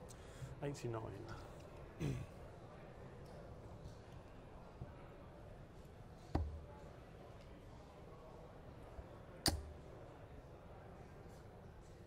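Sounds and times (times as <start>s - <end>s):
dart hitting dartboard: 6.4s - 6.6s, 9.5s - 9.8s.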